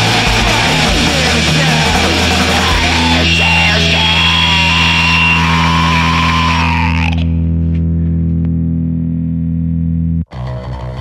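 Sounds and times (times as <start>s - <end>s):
distorted punk rock music: 0.0s - 11.0s.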